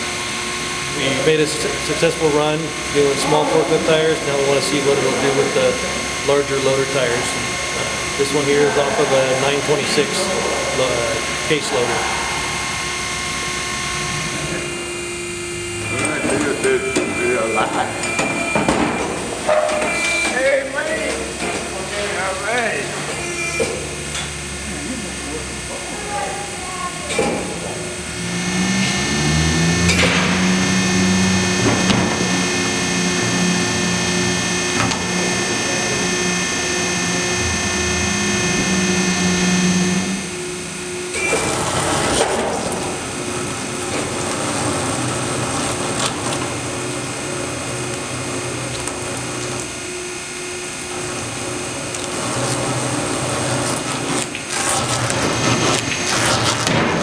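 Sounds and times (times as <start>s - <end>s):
tire-cutting machine motor hum: 0.0s - 26.5s, 27.1s - 57.0s.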